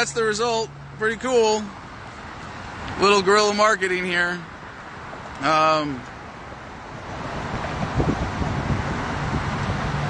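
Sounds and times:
highway traffic passing: 0:00.0 - 0:10.0
wind buffeting microphone: 0:06.8 - 0:10.0.

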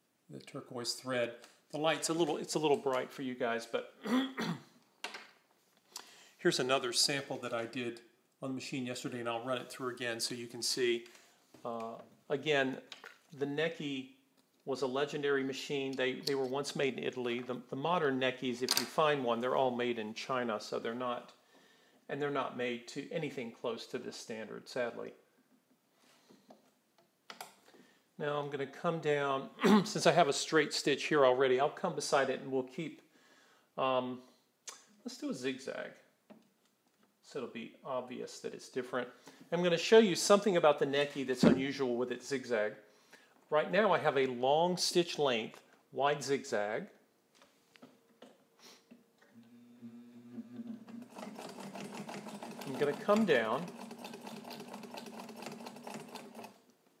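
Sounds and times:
sewing machine stitching: 0:50.6 - 0:56.6.

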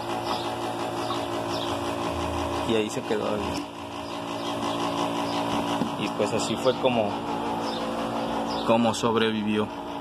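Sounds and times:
motor humming: 0:00.0 - 0:10.0.

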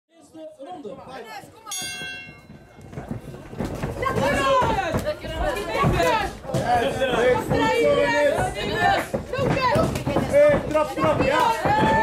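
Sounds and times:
bell ringing: 0:01.7 - 0:02.9.

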